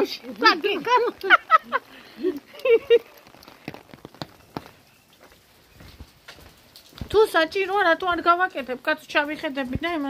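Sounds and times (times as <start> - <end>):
rain falling: 0.0 - 10.0
raindrops hitting umbrella: 0.0 - 10.0.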